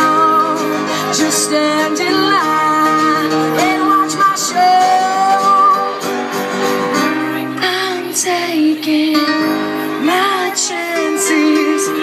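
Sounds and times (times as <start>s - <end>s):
woman singing: 0.0s - 6.1s, 7.0s - 12.0s
keyboard accompaniment: 0.0s - 12.0s.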